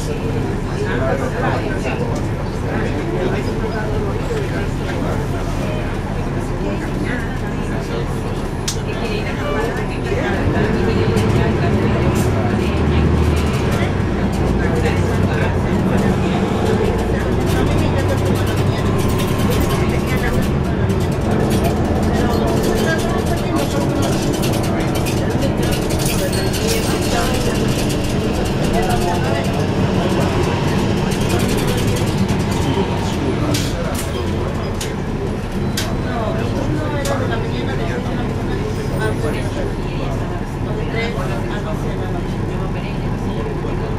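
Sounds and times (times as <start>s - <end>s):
bus diesel engine running: 0.0s - 43.9s
passengers' voices: 0.0s - 43.9s.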